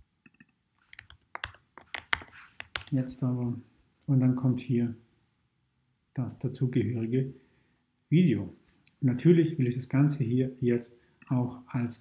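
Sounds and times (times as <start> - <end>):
man talking: 2.9 - 5.0, 6.2 - 7.4, 8.1 - 12.0.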